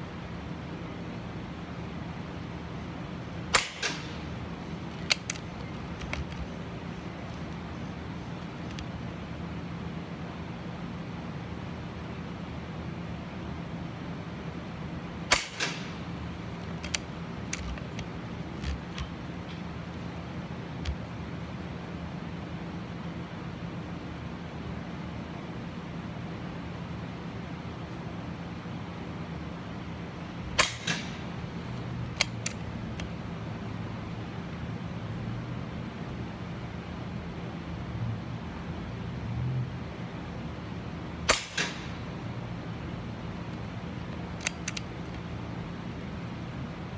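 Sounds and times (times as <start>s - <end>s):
steady low hum: 0.0s - 46.9s
air rifle shots: 3.5s - 6.6s, 15.3s - 17.9s, 30.5s - 31.4s, 41.2s - 42.0s
light clicks: 44.4s - 45.2s.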